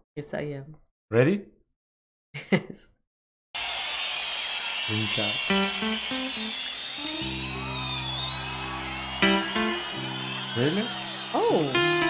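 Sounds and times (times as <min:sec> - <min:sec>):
crowd noise: 0:03.6 - 0:12.0
high whistling: 0:03.6 - 0:12.0
guitar notes and chord: 0:05.5 - 0:06.5, 0:07.1 - 0:12.0.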